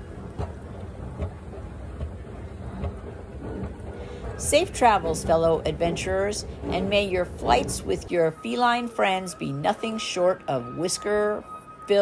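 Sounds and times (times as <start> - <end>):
escalator steps clacking: 0.0 - 8.7
escalator rumbling: 0.0 - 12.0.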